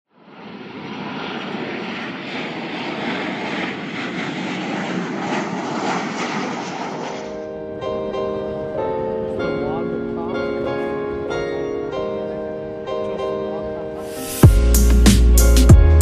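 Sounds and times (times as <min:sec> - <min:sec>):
jet airliner flying low: 0:00.1 - 0:14.4
piano music: 0:07.0 - 0:16.0.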